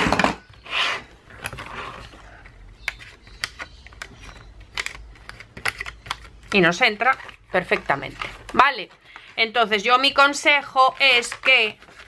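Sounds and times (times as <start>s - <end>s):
paper rustling: 10.5s - 12.0s.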